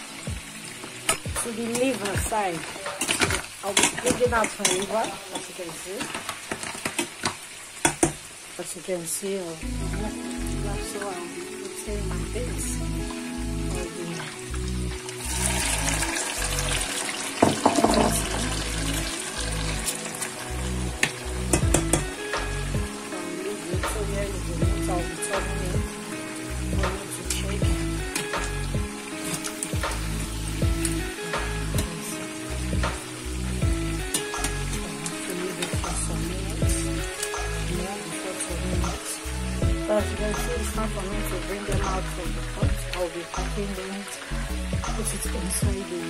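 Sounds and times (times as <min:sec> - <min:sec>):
background music with steady beat: 0:00.0 - 0:04.6, 0:09.6 - 0:46.0
chicken sizzling in hot oil: 0:00.0 - 0:46.0.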